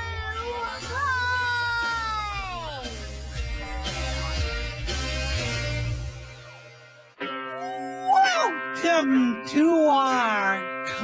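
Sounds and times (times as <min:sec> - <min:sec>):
jingle music: 0:00.0 - 0:06.8
low bass: 0:00.0 - 0:07.1.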